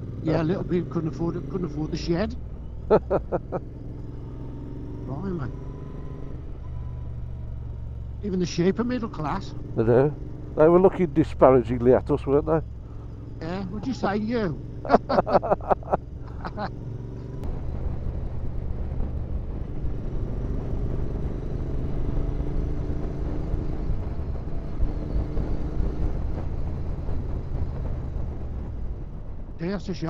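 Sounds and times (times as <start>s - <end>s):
motorcycle engine running: 0.0s - 29.8s
laughter: 2.9s - 3.6s, 14.8s - 16.7s.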